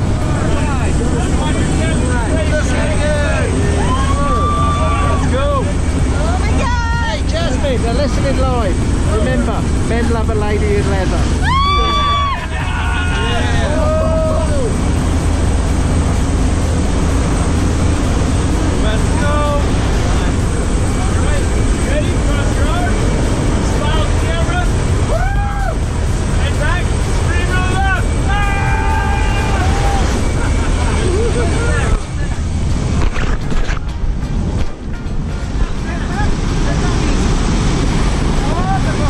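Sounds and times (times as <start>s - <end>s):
plane engine drone: 0.0s - 39.0s
rushing air: 0.0s - 39.0s
people shouting: 3.2s - 5.7s, 11.4s - 14.9s, 25.0s - 25.9s, 27.3s - 32.0s.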